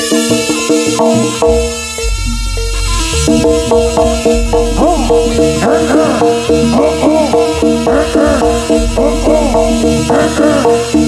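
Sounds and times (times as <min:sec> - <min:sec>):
gamelan drums and percussion: 0:00.0 - 0:11.0
sustained melodic tones: 0:00.0 - 0:11.0
rising and falling pitch swoops: 0:02.0 - 0:10.7.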